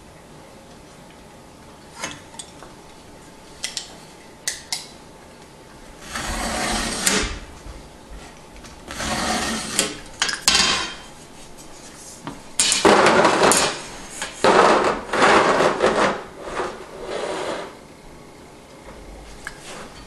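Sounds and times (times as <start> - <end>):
metal straightedge scraping sheetrock: 6.0 - 7.4, 8.9 - 10.0, 12.6 - 17.7.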